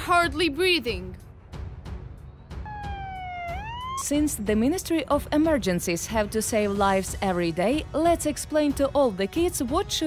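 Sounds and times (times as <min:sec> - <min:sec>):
emergency vehicle siren: 0:02.6 - 0:04.4.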